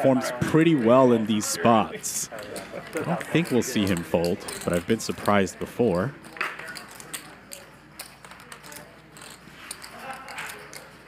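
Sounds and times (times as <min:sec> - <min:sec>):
faint voices murmuring: 0:00.0 - 0:11.0
poker chips clicking: 0:02.3 - 0:11.0.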